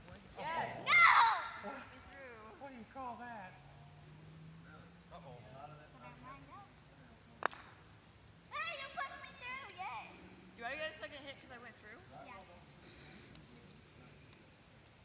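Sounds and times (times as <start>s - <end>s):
insects chirring: 0.0s - 15.0s.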